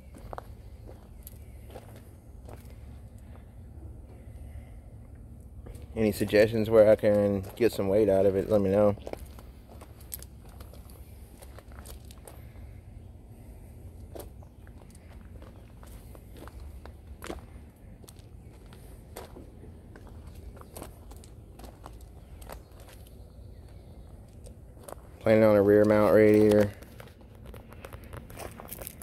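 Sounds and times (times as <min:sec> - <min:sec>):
footsteps on gravel: 0:00.0 - 0:03.5, 0:06.8 - 0:12.7, 0:13.5 - 0:29.0
low steady rumble: 0:00.0 - 0:29.0.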